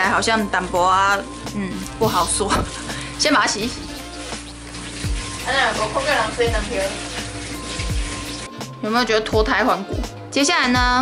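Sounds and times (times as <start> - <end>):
kitchen tap running: 1.8 - 10.0.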